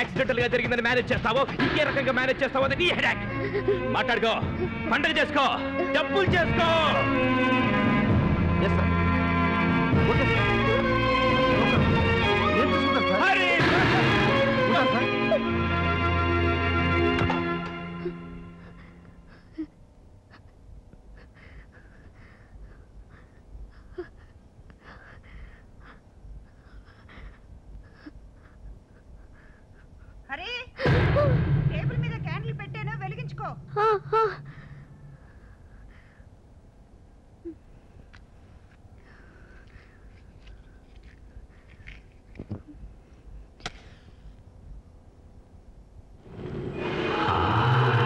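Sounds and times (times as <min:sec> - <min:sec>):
quiet film soundtrack: 0:00.0 - 0:48.0
low rumble: 0:30.8 - 0:36.1
fire flaring up: 0:46.2 - 0:48.0.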